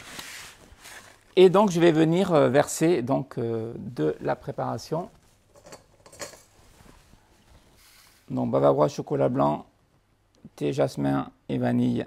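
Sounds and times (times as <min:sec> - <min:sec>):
faint kitchen noises: 0:04.0 - 0:08.2.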